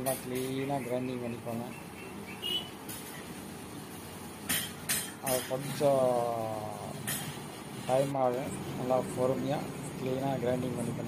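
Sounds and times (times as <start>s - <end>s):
workshop noise: 0.0s - 11.0s.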